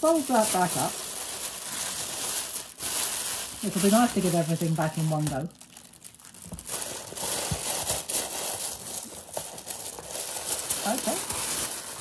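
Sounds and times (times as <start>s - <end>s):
tissue paper rustling: 0.0s - 12.0s.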